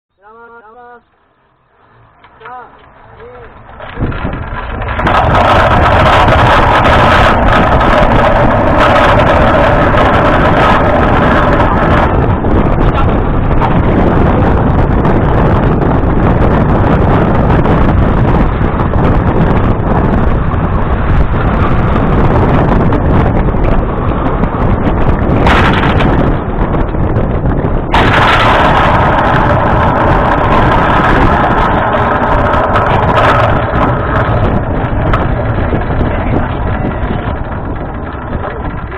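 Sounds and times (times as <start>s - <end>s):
wheel rumbling on asphalt: 0.2s - 38.9s
air rushing over microphone: 2.5s - 38.9s.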